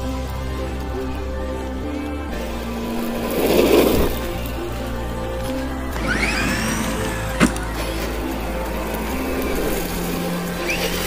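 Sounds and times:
background music: 0.0 - 11.0
tyres spraying grit: 0.0 - 11.0
electric motor whining: 5.9 - 11.0.

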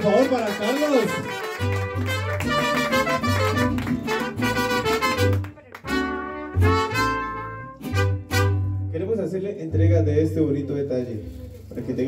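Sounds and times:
mariachi band with trumpets: 0.0 - 12.0.

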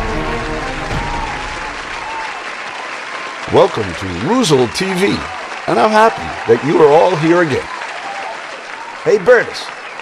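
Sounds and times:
theme music: 0.0 - 2.5
people clapping and cheering: 0.0 - 10.0.

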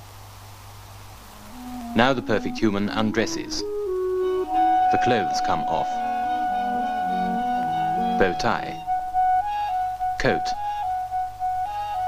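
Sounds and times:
low hum and hiss: 0.0 - 12.0
soft held musical note: 1.1 - 10.1.

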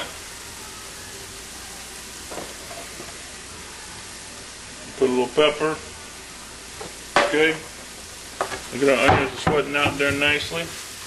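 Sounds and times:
onions sizzling in butter: 0.0 - 11.0.

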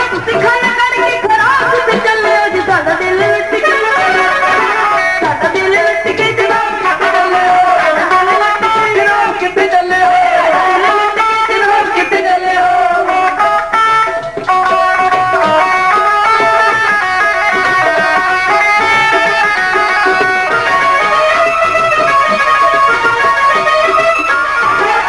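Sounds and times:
plucked string folk melody: 0.0 - 25.0.

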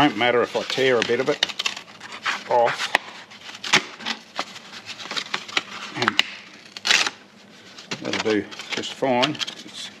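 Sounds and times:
paper crackling: 0.0 - 10.0
paper tearing: 4.9 - 7.2.

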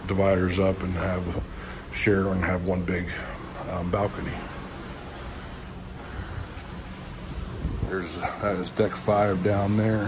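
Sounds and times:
rushing wind with low rumble: 0.0 - 10.0.

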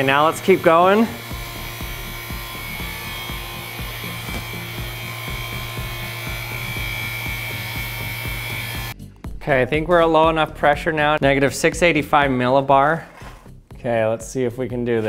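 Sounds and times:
vacuum pump humming: 0.0 - 9.0.

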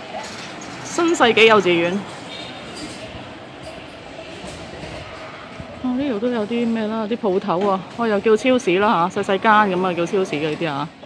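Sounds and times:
busy street rumbling hiss: 0.0 - 11.0.

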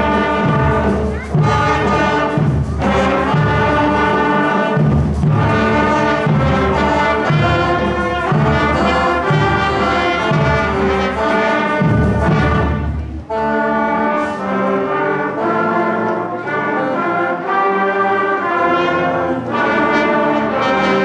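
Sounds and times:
low drum beats: 0.0 - 13.3
brass chords: 0.0 - 21.0.

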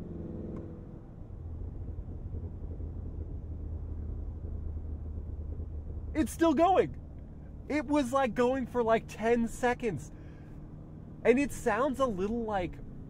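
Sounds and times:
steady low engine drone: 0.0 - 13.0
exhaust crackling: 1.0 - 13.0.

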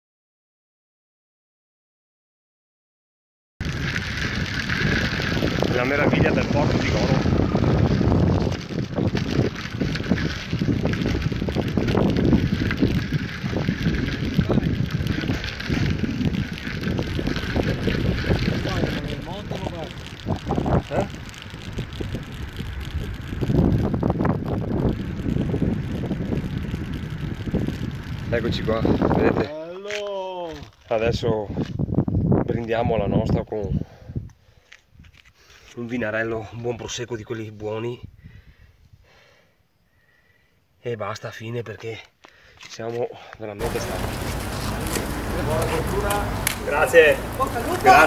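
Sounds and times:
wind buffeting microphone: 3.6 - 29.6, 30.5 - 35.2, 38.0 - 39.2, 43.6 - 48.0.

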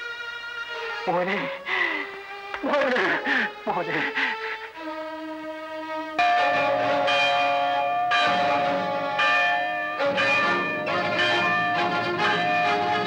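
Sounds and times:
church bells ringing: 6.2 - 13.0.

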